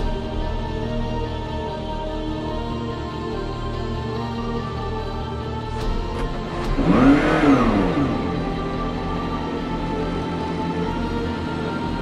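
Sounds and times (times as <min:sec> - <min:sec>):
background music: 0:00.0 - 0:12.0
car engine revving: 0:05.6 - 0:12.0.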